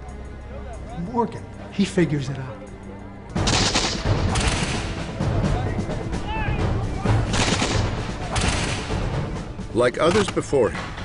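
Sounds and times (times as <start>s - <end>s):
musket fire volleys: 3.4s - 5.0s, 7.2s - 9.1s.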